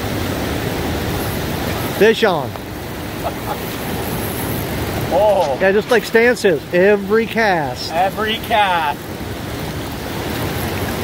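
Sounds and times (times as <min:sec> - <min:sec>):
river rapids rushing: 0:00.0 - 0:11.0.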